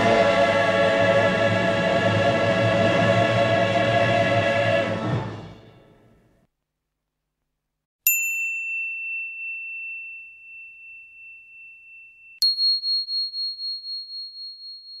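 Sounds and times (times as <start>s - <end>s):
bell dings: 8.1s - 15.0s.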